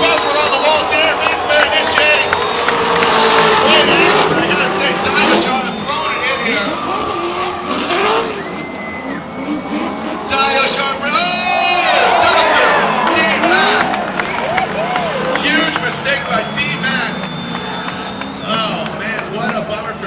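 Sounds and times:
car engines revving hard: 0:00.0 - 0:20.0.

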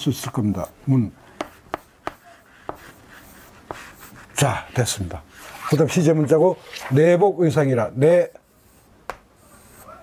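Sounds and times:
chalk tapping on blackboard: 0:01.3 - 0:04.4, 0:08.6 - 0:10.0
chalk scratching: 0:01.4 - 0:07.2, 0:07.8 - 0:10.0.

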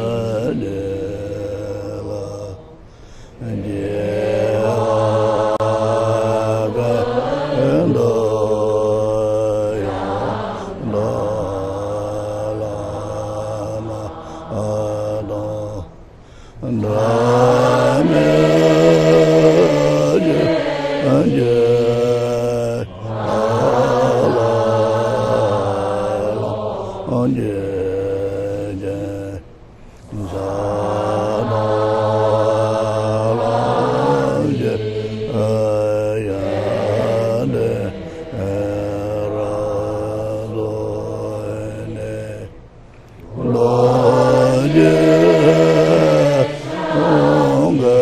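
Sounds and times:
congregation chanting: 0:00.0 - 0:48.0.

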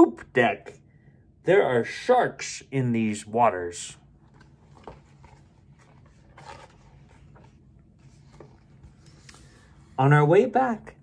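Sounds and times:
book page turning rustles: 0:04.2 - 0:09.7.

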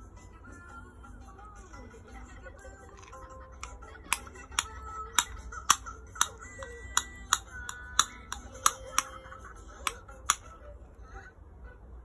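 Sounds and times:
faint background music: 0:00.0 - 0:12.0
sharp clicks or taps: 0:03.0 - 0:09.1.

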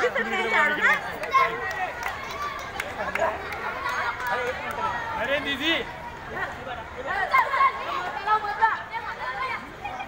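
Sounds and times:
boys calling and shouting: 0:00.0 - 0:10.0.

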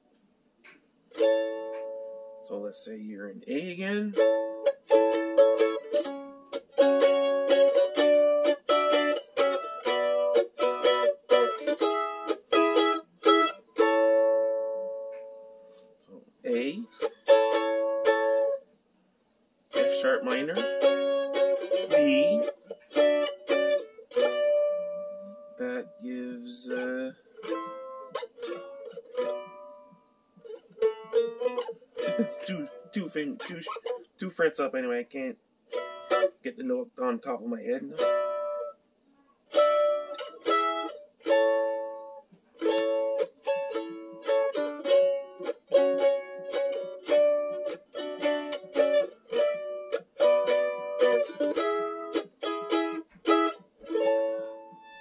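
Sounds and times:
mandolin chord ringing: 0:01.1 - 0:02.6, 0:03.9 - 0:15.8, 0:16.5 - 0:18.6, 0:19.7 - 0:34.1, 0:35.7 - 0:36.5, 0:37.6 - 0:38.8, 0:39.5 - 0:55.0.

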